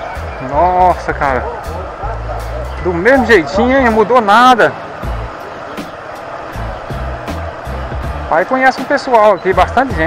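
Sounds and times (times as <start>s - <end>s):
motorcycle and road noise: 0.0s - 10.0s
music with steady beat: 5.0s - 8.9s.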